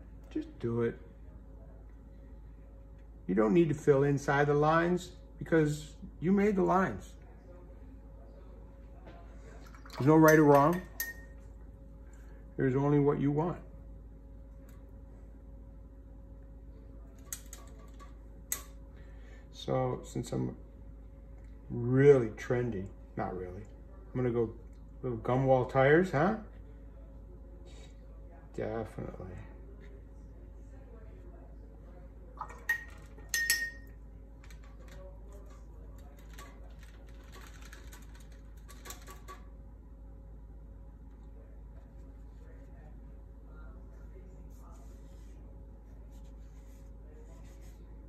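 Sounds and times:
paintbrush clinking on container: 0:10.2 - 0:11.4, 0:32.4 - 0:34.0.

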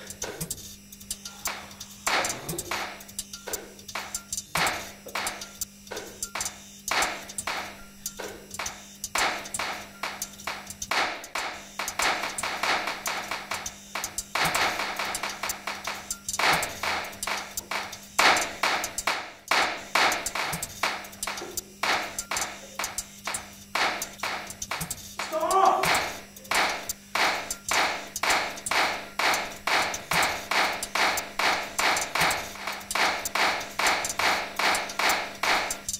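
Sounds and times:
rapid sharp taps and clicks: 0:00.0 - 0:35.9
steady low hum: 0:00.0 - 0:35.9.

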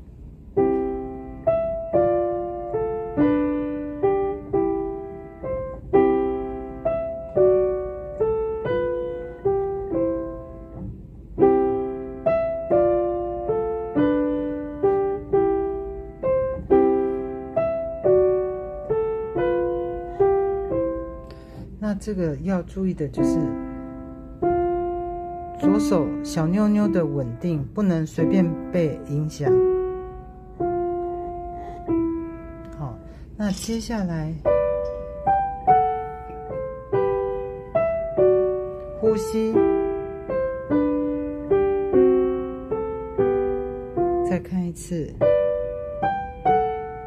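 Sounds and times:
slow piano melody: 0:00.0 - 0:47.0.

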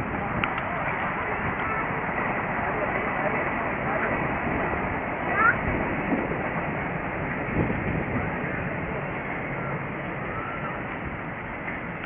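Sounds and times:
distant voices: 0:00.0 - 0:12.0.

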